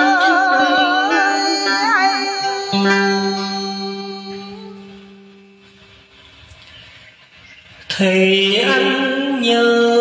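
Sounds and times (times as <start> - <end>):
faint steady hiss: 0.0 - 10.0
guitar-led backing music: 0.0 - 10.0.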